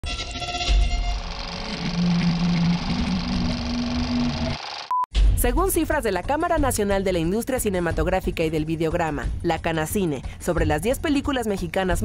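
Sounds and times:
film projector whirring: 1.0s - 4.9s.

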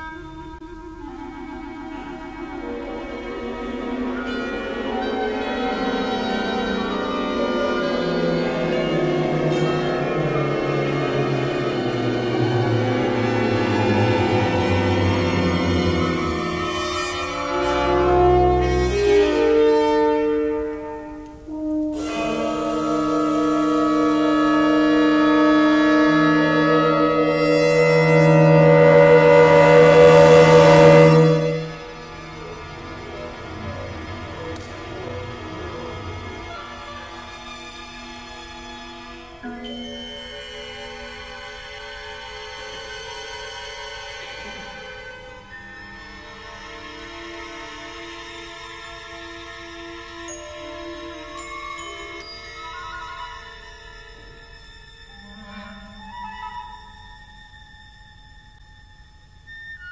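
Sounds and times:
orchestra playing sustained chord: 0.0s - 56.2s
higher bright orchestral tones: 0.0s - 59.9s.

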